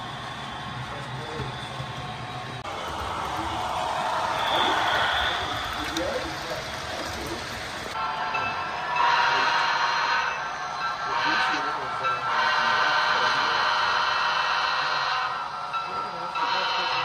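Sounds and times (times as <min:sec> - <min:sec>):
indistinct chatter of voices: 0:00.0 - 0:17.0
model train running on track: 0:00.0 - 0:17.0.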